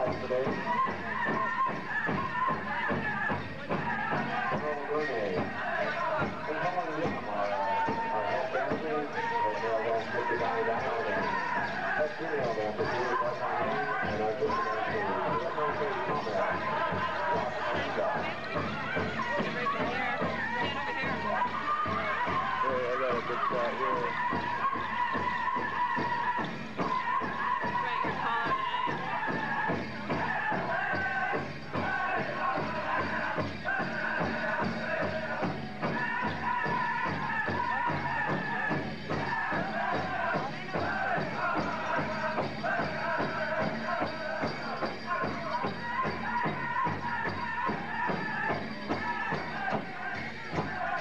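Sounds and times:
group singing high voices: 0.0 - 51.0.

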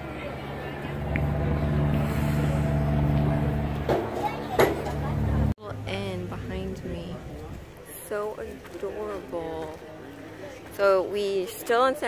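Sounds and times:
vehicle engine running: 0.0 - 5.6.

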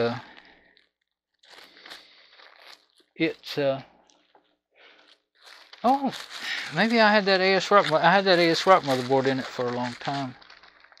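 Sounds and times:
faint crunching and crinkling: 0.0 - 11.0.

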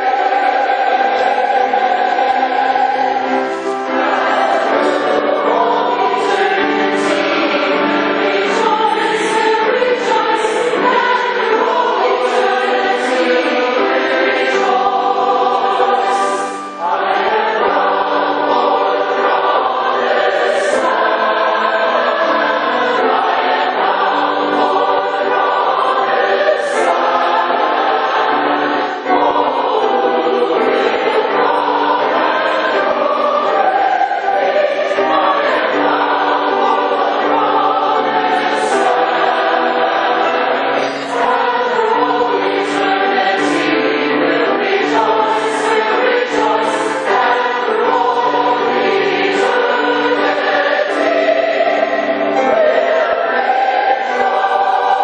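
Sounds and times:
choir singing a hymn: 0.0 - 55.0
piano accompaniment: 0.0 - 55.0.

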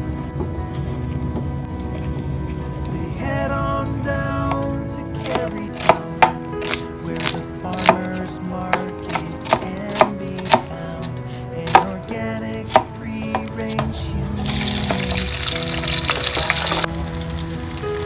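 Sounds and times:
knife slicing onion on board: 5.2 - 10.7, 11.7 - 12.0
onion sizzling in hot oil: 14.4 - 18.0.

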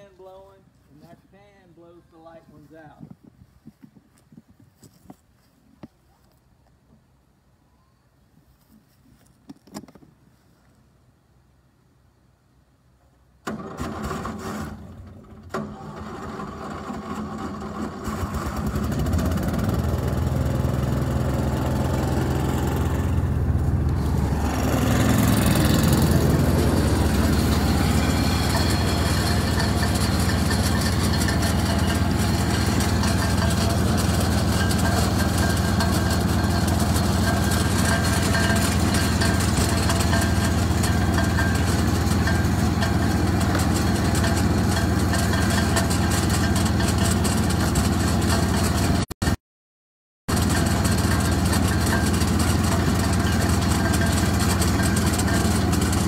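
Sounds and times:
machine engine running: 15.8 - 49.0, 50.3 - 56.0.

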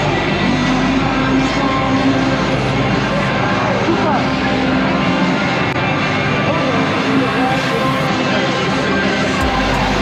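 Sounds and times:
many indistinct voices: 0.0 - 10.0.

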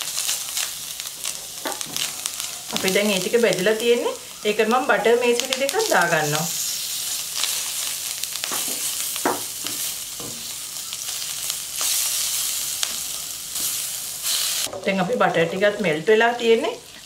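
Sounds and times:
butter sizzling in hot oil: 0.0 - 17.0.

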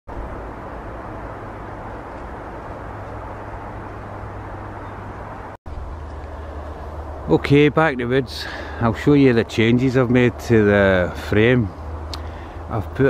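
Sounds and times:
outdoor background noise: 0.1 - 13.0.

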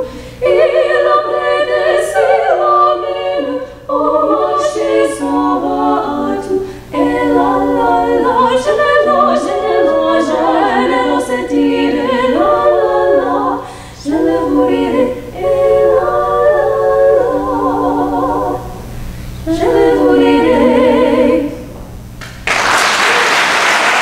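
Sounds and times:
women singing in harmony: 0.0 - 21.8.

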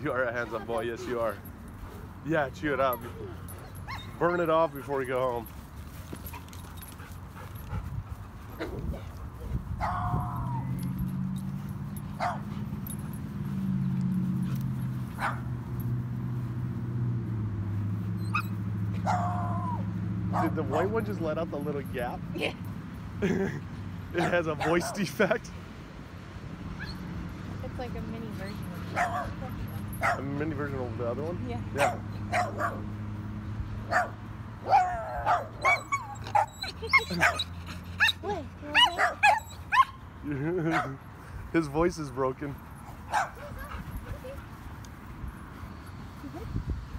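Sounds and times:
dog yapping hoarsely: 9.8 - 10.8, 12.2 - 12.6, 15.2 - 15.5, 18.2 - 20.9, 28.9 - 29.4, 30.0 - 30.2, 31.8 - 32.9, 33.9 - 40.0, 43.1 - 44.4.

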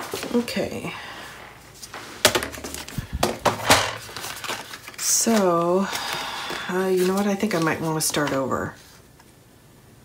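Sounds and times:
paper rustling: 1.8 - 9.0.

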